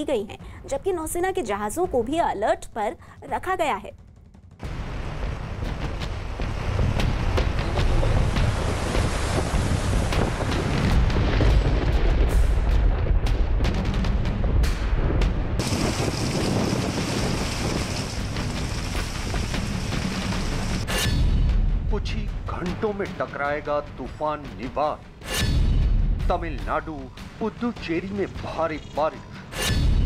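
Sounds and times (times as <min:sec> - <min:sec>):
sea noise: 0:04.6 - 0:11.9, 0:15.0 - 0:21.1
rushing rain: 0:04.6 - 0:20.9
wind buffeting microphone: 0:04.9 - 0:13.3, 0:15.6 - 0:20.0.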